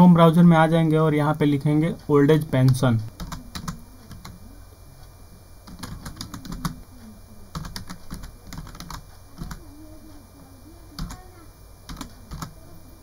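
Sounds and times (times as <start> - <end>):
computer keyboard typing: 2.6 - 4.4, 5.6 - 6.8, 7.5 - 9.7, 10.9 - 11.3, 11.9 - 12.6.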